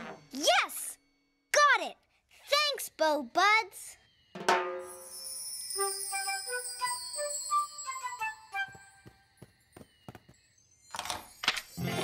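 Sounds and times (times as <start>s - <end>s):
magic sparkle chimes: 4.0s - 12.0s.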